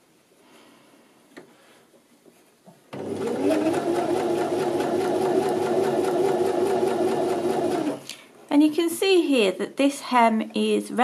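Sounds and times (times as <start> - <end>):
sewing machine stitching: 2.9 - 8.0.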